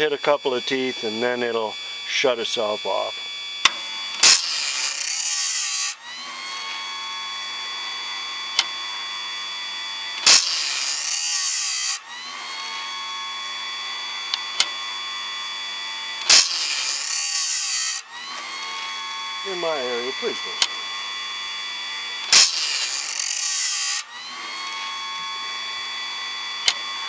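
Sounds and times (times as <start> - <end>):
grinder motor humming: 0.0 - 27.0
grinding wheel hissing on steel: 0.0 - 27.0.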